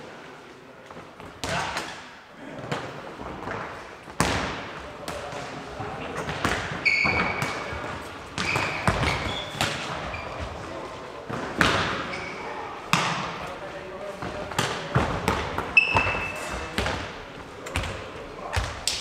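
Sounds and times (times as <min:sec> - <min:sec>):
ball impacts echoing in hall: 0:00.0 - 0:19.0
sneakers squeaking on floor: 0:06.1 - 0:10.9, 0:11.5 - 0:13.4, 0:14.1 - 0:18.9.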